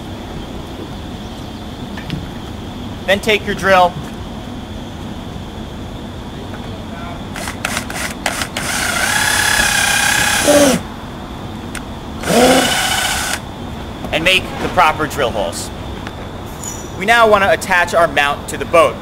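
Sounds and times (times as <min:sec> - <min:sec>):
cordless drill motor: 0:07.4 - 0:10.8, 0:12.2 - 0:13.4.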